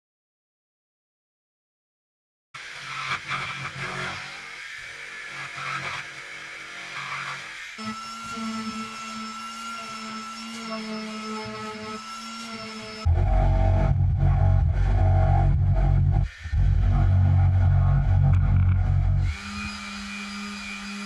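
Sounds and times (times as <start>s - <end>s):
handheld power tool running: 2.6s - 13.1s, 18.1s - 21.0s
jigsaw cutting wood: 2.6s - 13.1s, 18.3s - 21.0s.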